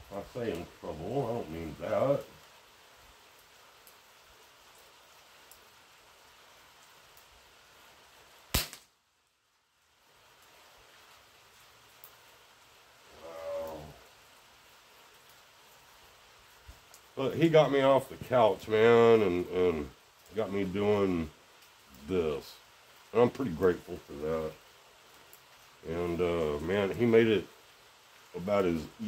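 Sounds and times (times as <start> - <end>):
pellet rifle shot: 8.5 - 8.9.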